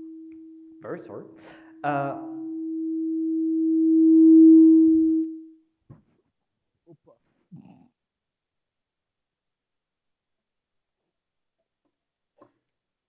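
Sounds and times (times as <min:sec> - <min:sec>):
microphone feedback tone: 0:00.0 - 0:01.0, 0:01.8 - 0:05.5.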